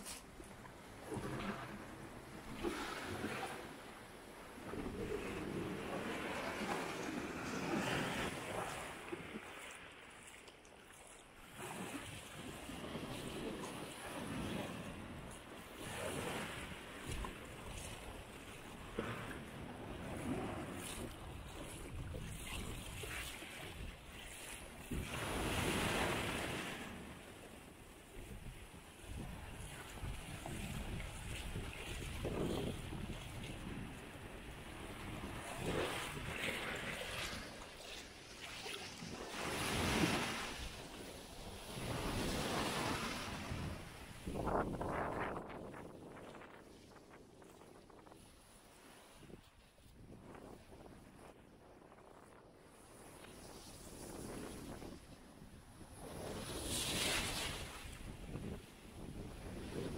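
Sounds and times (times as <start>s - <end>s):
small waves washing up a beach: 0.0s - 59.9s.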